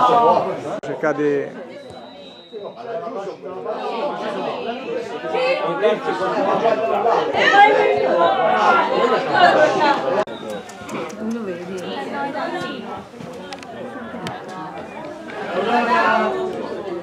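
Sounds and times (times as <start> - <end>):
overlapping chatter: 0.0 - 17.0.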